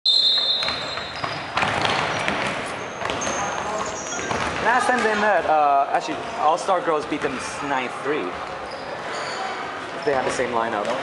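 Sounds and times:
referee's whistle blast: 0.0s - 1.2s
sneaker squeaks: 0.1s - 5.4s, 7.2s - 11.0s
footfalls on hardwood court: 0.6s - 5.2s.

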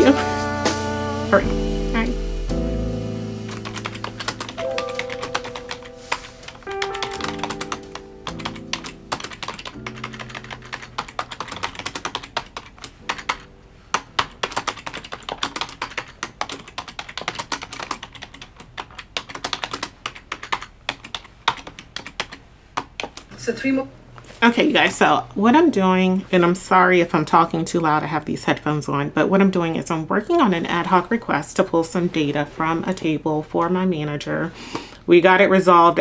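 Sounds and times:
soft background music: 0.0s - 16.8s, 23.5s - 36.0s
typing on computer keyboard: 3.5s - 23.3s.

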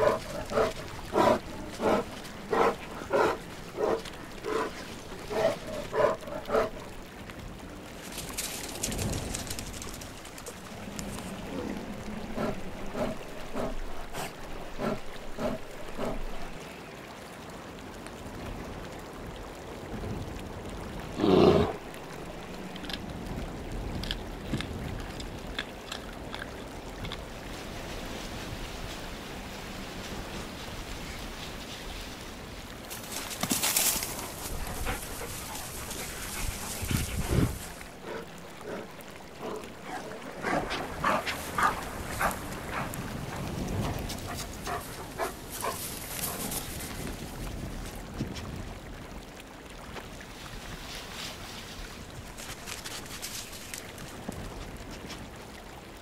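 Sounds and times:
wolves calling: 0.0s - 6.9s, 33.1s - 43.4s.

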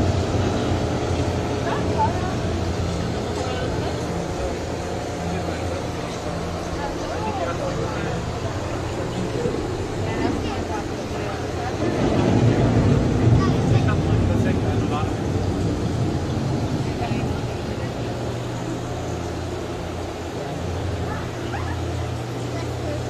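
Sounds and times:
broad rumble: 0.0s - 23.0s
faint indistinct voices: 0.0s - 23.0s
steady low hum: 0.0s - 23.0s.

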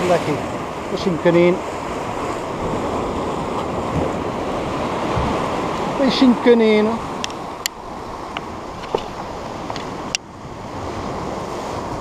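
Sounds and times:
sea waves washing over rocks: 0.0s - 12.0s
wind on microphone: 0.0s - 12.0s.

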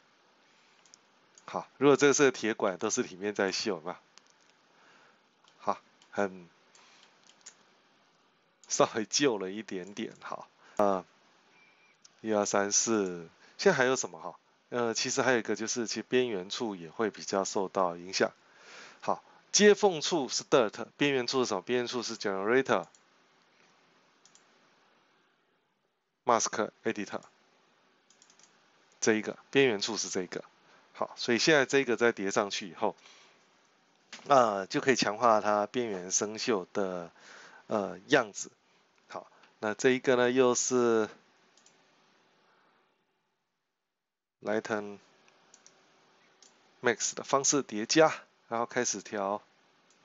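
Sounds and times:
faint hiss: 0.0s - 43.0s, 44.5s - 50.0s
computer mouse clicks: 0.8s - 1.5s, 4.2s - 4.6s, 6.7s - 7.6s, 24.2s - 24.5s, 28.1s - 28.6s, 41.6s - 41.8s, 45.2s - 46.6s.

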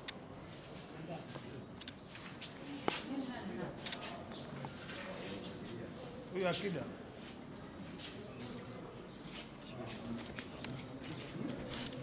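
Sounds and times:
people talking indistinctly: 0.8s - 12.0s
sharp clicks: 1.8s - 2.0s.

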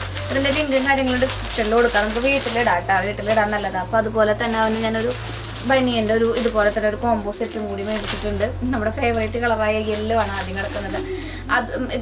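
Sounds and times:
plastic wrapper crinkling: 0.0s - 11.8s
woman talking: 0.2s - 12.0s.

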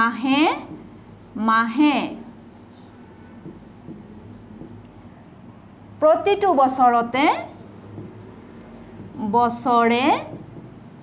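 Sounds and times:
stylus tapping on screen: 2.2s - 4.8s, 7.5s - 9.3s, 10.2s - 11.0s.

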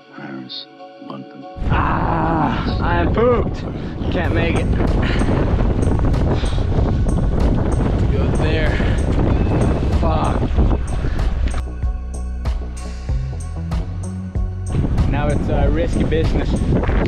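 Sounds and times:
wordless vocal sounds: 0.0s - 5.4s
wind buffeting microphone: 1.6s - 17.0s.

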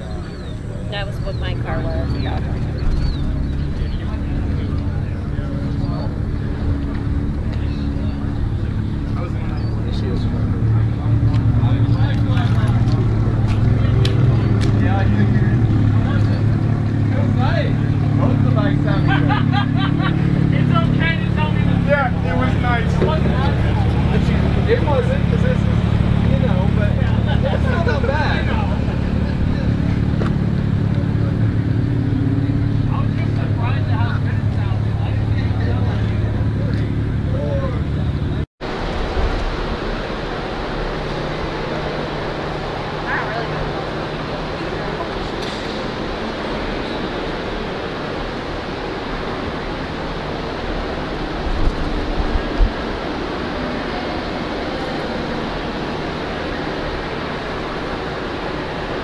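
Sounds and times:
indistinct voices: 0.0s - 38.4s
vehicle engine idling: 0.0s - 59.0s.

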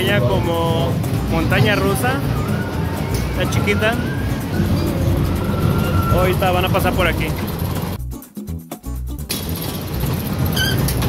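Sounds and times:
low rumble of ride machinery: 0.0s - 8.0s, 9.3s - 11.0s
music playing: 0.0s - 11.0s.

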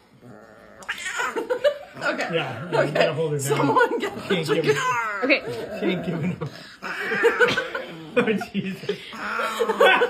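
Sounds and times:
cat growling and yowling: 0.2s - 1.6s, 9.2s - 10.0s.

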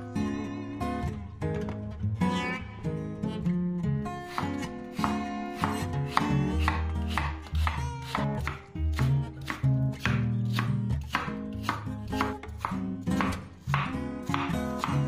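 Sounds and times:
acoustic guitar music: 0.0s - 15.0s
knife cutting apple on wooden board: 4.3s - 15.0s.

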